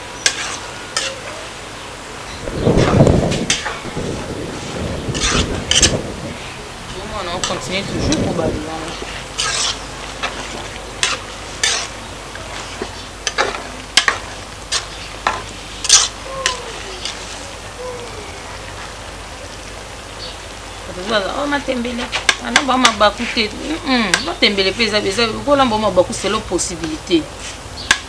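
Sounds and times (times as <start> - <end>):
steady sizzle: 0.0 - 28.0.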